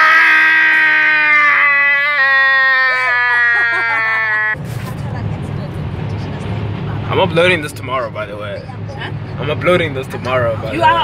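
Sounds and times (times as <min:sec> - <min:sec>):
man shouting long: 0:00.0 - 0:04.4
road noise inside car: 0:02.9 - 0:11.0.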